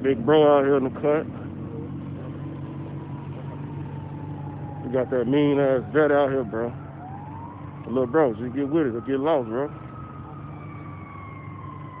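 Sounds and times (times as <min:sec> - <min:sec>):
engine rumble: 0:00.0 - 0:12.0
siren winding down: 0:01.8 - 0:12.0.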